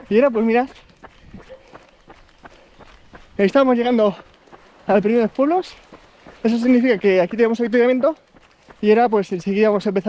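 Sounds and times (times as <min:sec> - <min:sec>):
faint jogging footsteps: 0:00.0 - 0:10.0.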